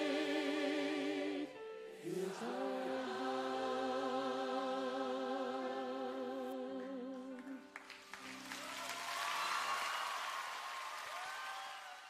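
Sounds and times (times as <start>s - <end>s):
congregation singing with vibrato: 0.0s - 7.7s
congregation applause: 7.7s - 12.0s.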